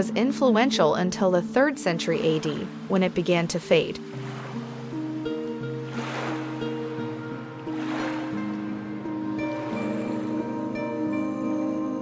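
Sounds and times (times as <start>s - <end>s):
soft sustained background music: 0.0s - 12.0s
sea waves washing onto rocks: 2.0s - 10.5s.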